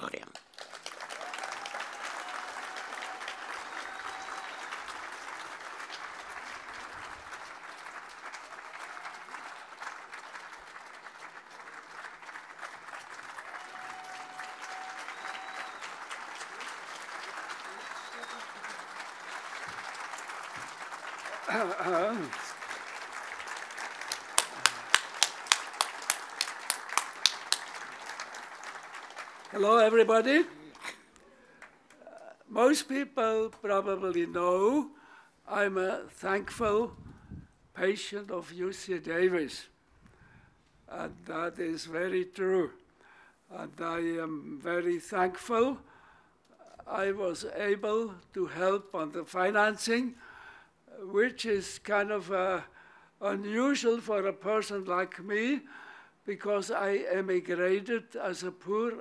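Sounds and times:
audience applauding: 0.0s - 32.2s.

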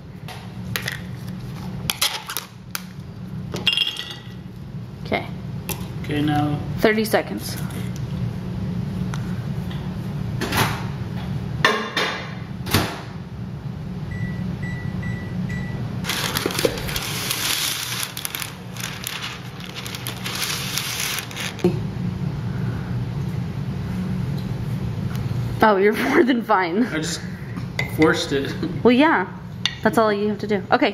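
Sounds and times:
microwave oven humming: 0.0s - 30.9s
parchment paper crinkling: 16.0s - 21.7s.

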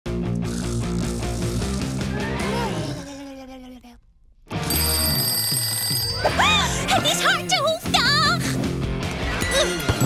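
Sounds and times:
music: 0.1s - 3.0s, 4.5s - 10.0s
cartoon alarm clock ringing: 4.6s - 6.8s.

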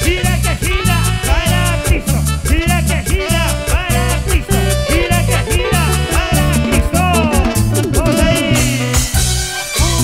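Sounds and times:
heavy bass line: 0.0s - 9.5s
live band playing latin dance music: 0.0s - 10.0s.

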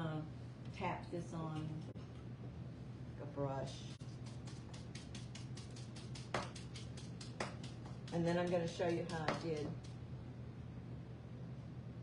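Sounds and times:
light tapping of napkin on wood: 4.3s - 9.9s.

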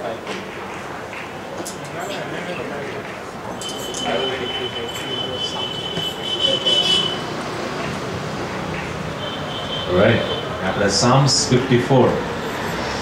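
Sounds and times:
murmuring voices: 0.0s - 13.0s
high tone over pa system: 3.4s - 7.4s, 9.2s - 10.8s.

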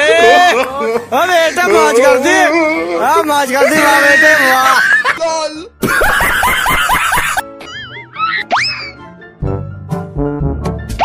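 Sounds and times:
rising cartoon chirps: 8.5s - 9.1s.

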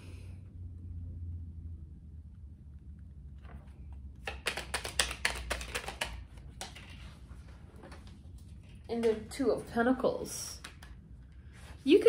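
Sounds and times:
low room hum: 0.0s - 12.0s
cards being shuffled: 3.4s - 9.2s, 10.5s - 11.0s.

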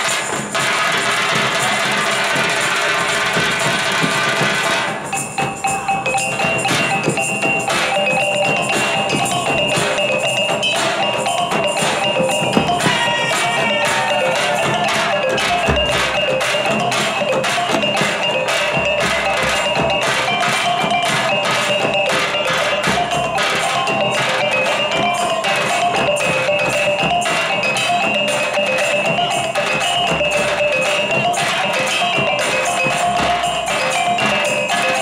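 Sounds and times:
fast percussion strokes: 0.0s - 35.0s
wavering melody: 3.3s - 35.0s.

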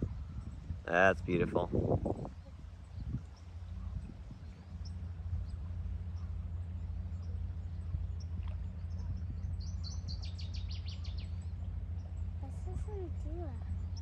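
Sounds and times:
songbird trill: 0.0s - 0.9s, 1.8s - 14.0s
low rumble: 0.0s - 14.0s
faint bird chirps: 2.2s - 14.0s.

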